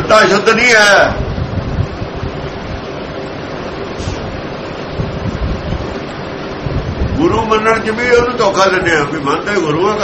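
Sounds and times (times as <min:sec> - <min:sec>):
faint steady hum: 0:00.0 - 0:10.0
rushing hiss: 0:03.9 - 0:04.4.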